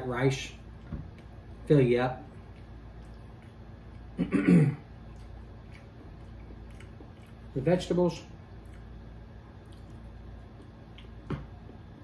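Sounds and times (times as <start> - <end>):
man chewing food: 0.6 - 12.0.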